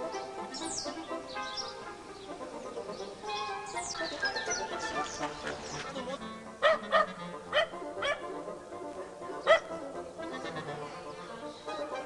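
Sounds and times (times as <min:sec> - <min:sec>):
background music: 0:00.0 - 0:12.0
small dog barking: 0:06.6 - 0:08.3, 0:09.5 - 0:09.8.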